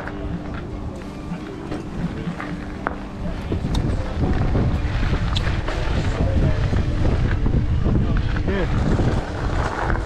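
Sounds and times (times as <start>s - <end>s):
faint voices: 0.0s - 10.0s
bicycle tyres crunching on gravel: 2.3s - 10.0s
wind rumbling on microphone: 3.1s - 10.0s.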